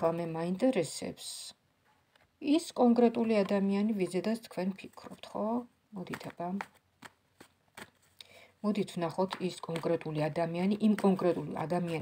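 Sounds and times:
cards clicking: 6.0 - 8.2.

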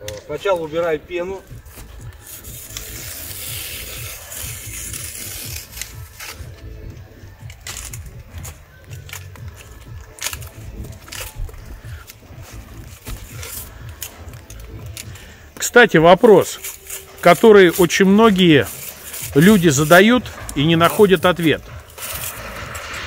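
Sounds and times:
knife scraping foam: 2.0 - 6.6, 16.4 - 23.0.

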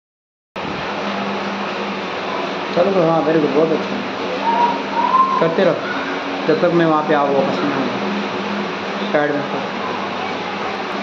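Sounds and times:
low hum: 0.6 - 11.0.

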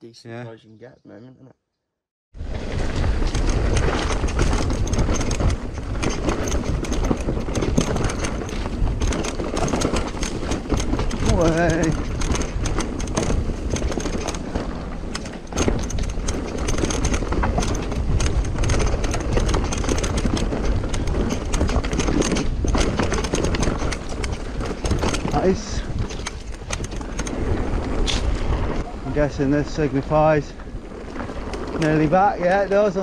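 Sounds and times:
bike rattling with clicks and knocks: 2.4 - 33.0
bike tyres rolling over dirt: 2.4 - 33.0.

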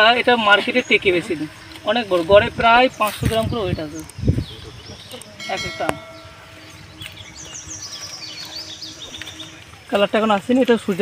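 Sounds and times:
small bird chirping: 0.6 - 10.0.

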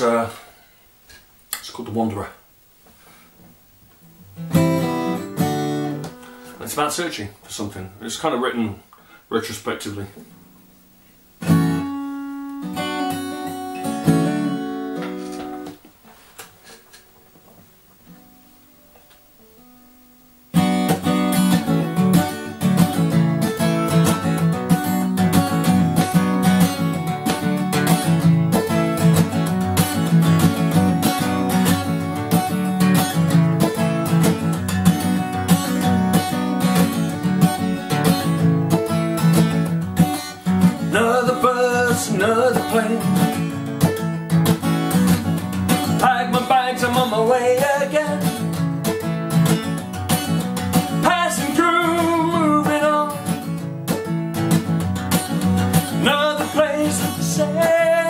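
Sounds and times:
acoustic guitar: 0.0 - 58.0
man singing: 40.6 - 43.5, 45.8 - 48.5, 50.9 - 53.4, 55.9 - 58.0.

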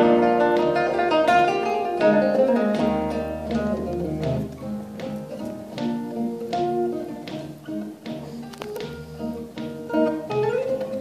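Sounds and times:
solo acoustic guitar picking: 0.0 - 11.0.

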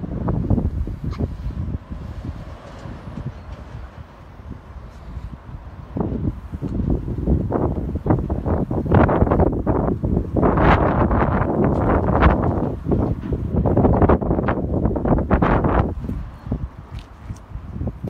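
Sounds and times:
wind buffeting microphone: 0.0 - 18.0.

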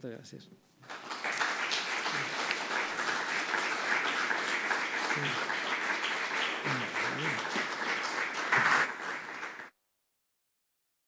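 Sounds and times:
audience applauding: 0.8 - 9.7.

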